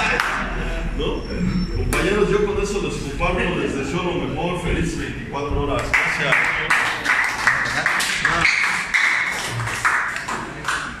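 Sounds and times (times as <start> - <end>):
small group applauding: 0.0 - 0.5, 5.8 - 11.0.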